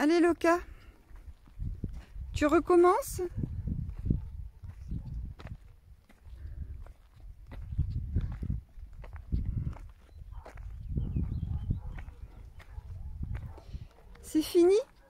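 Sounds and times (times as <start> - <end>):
footsteps on dry dirt: 0.0 - 15.0
wind rumble on microphone: 0.6 - 15.0.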